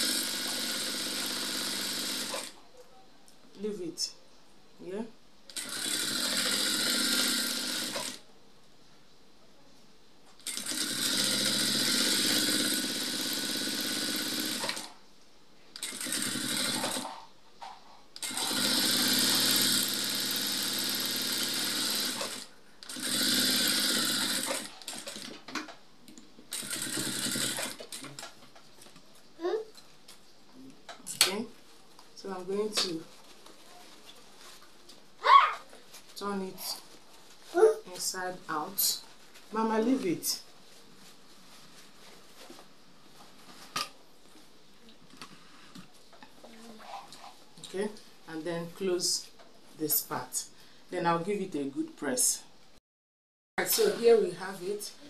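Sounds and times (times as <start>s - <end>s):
sewing machine stitching: 0.0s - 2.6s, 5.5s - 8.2s, 10.4s - 15.0s, 15.8s - 17.2s, 18.2s - 25.6s, 26.5s - 28.3s.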